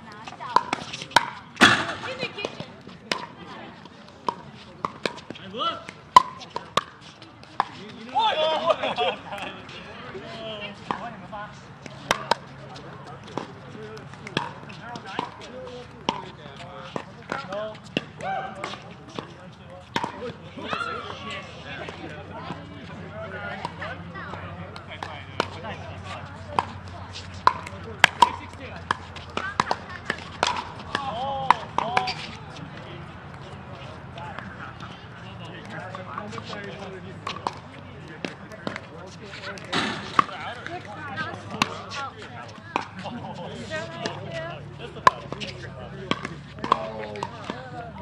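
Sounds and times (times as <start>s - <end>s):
paddles striking plastic balls: 13.3s - 15.4s, 26.5s - 32.3s, 46.1s - 47.6s.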